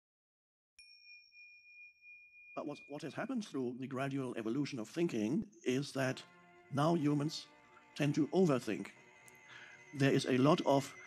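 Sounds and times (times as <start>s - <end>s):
faint bell-like ding: 0.8s - 3.2s.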